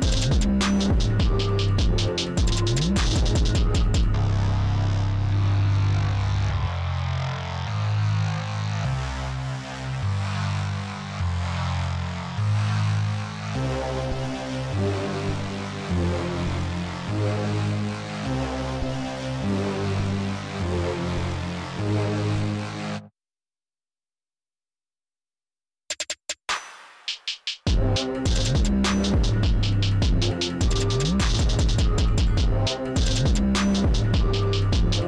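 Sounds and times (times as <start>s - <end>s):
electronic music with deep bass: 0.0s - 23.1s, 27.7s - 35.0s.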